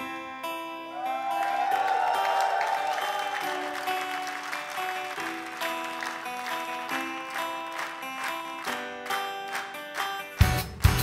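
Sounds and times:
guitar chords strummed: 0.0 - 1.4
acoustic band playing: 0.0 - 11.0
audience applause: 1.0 - 11.0.

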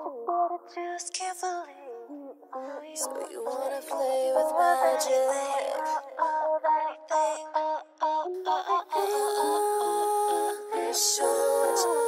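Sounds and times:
a cappella female vocal harmonies: 0.0 - 12.0.

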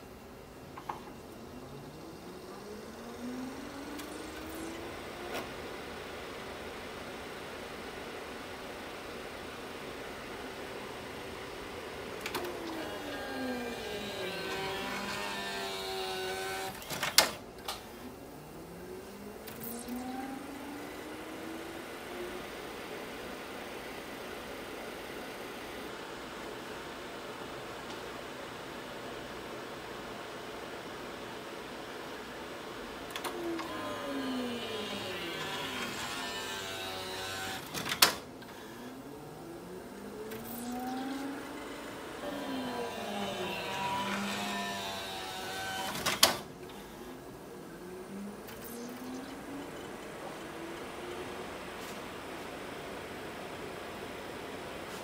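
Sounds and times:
disc player motor whine: 0.7 - 55.0.

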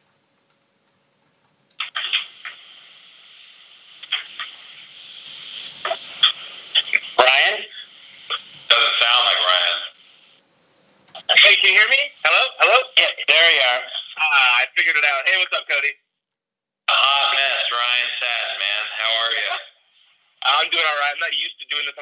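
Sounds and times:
hiss on phone line: 1.8 - 10.4, 11.2 - 15.7, 17.0 - 19.6.

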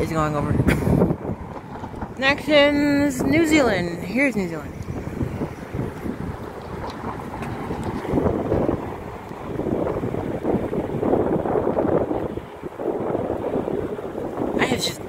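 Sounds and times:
jet engine noise: 0.0 - 15.0
wind buffeting microphone: 0.0 - 15.0.

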